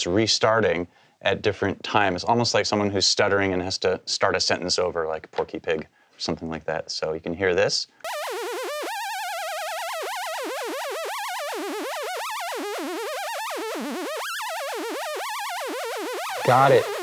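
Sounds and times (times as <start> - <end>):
wobbling sawtooth synth note: 8.1 - 17.0.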